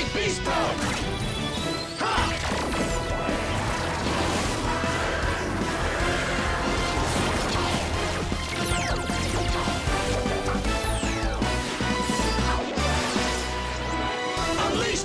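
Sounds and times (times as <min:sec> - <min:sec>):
driving energetic music: 0:00.0 - 0:15.0.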